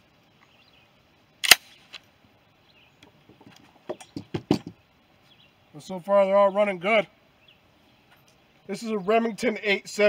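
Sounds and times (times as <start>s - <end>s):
loud sharp crack: 1.4s - 2.0s.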